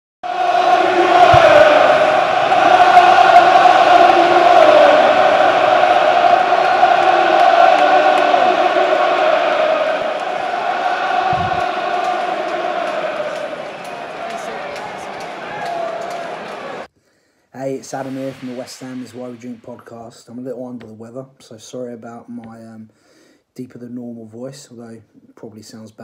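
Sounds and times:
crowd singing a chant: 0.2 - 16.9.

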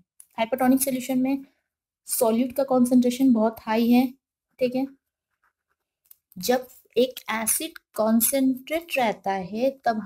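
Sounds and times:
woman speaking: 0.3 - 5.0, 6.3 - 10.0
pen writing on paper: 5.3 - 5.9.

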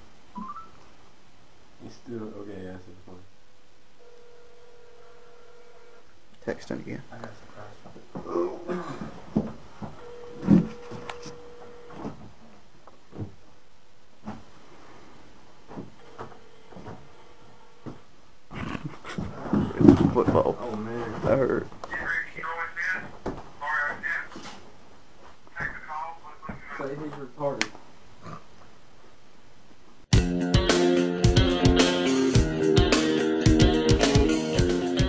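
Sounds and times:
telephone ringback tone: 4.0 - 6.0, 10.0 - 12.0.

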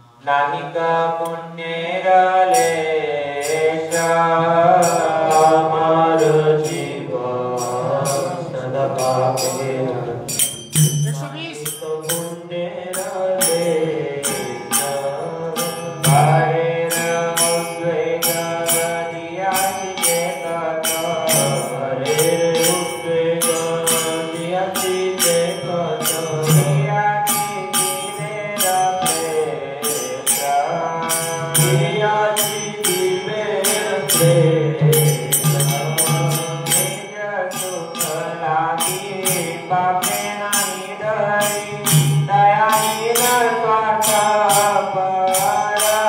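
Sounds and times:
mantra chanting sung as a melody: 0.0 - 46.0
steady percussion beat: 2.5 - 46.0.

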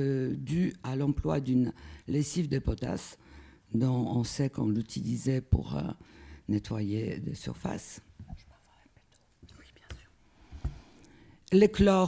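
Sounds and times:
person breathing: 1.8 - 2.1, 3.2 - 3.7, 6.0 - 6.5, 10.2 - 11.5.

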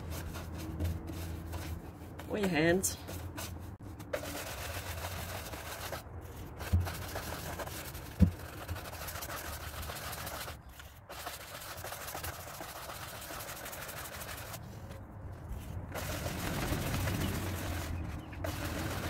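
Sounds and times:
brush scrubbing wax on chair: 0.0 - 14.8, 15.4 - 19.0.

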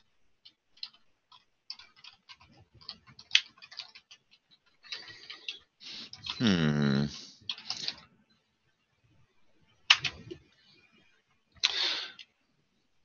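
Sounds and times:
keyboard typing clicks: 0.4 - 6.4, 9.9 - 10.4.

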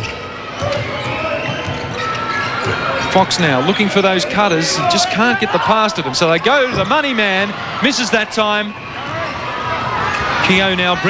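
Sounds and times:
faint crowd noise: 0.0 - 11.0.

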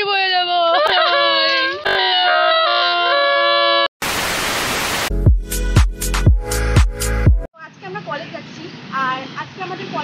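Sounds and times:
drawn-out crying wails: 0.6 - 3.8
static hiss: 4.0 - 5.1.

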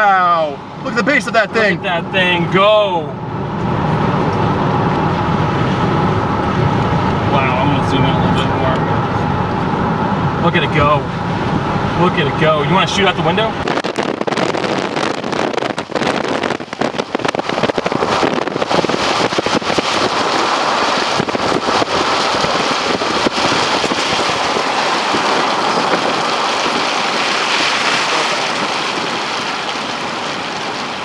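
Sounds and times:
rain and wind buffeting: 0.0 - 31.0
tyres on wet road: 0.0 - 31.0.

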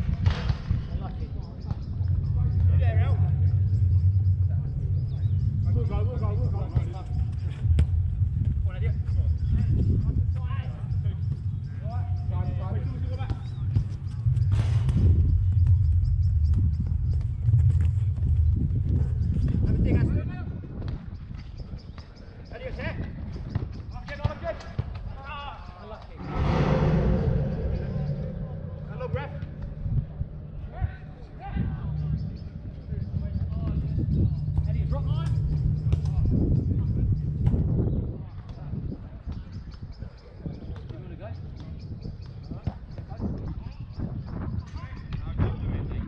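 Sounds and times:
low rumble: 2.0 - 10.1, 26.1 - 38.5.

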